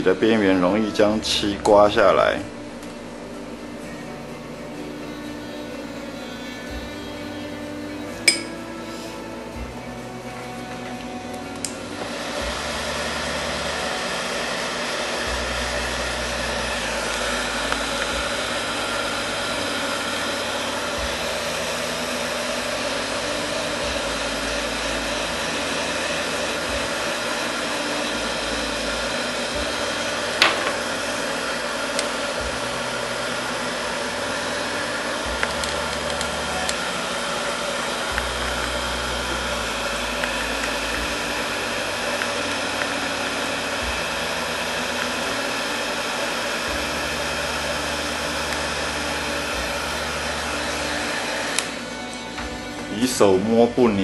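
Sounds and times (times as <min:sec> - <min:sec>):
hair dryer blowing: 0:00.0 - 0:54.0.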